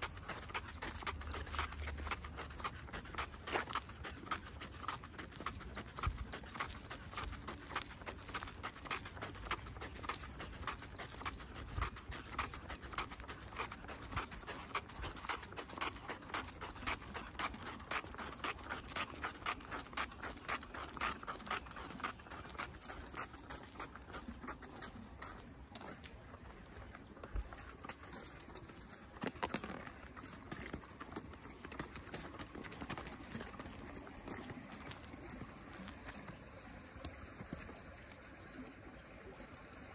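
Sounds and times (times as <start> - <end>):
dog paws pattering: 0.0 - 36.0
footsteps on asphalt: 0.0 - 38.1.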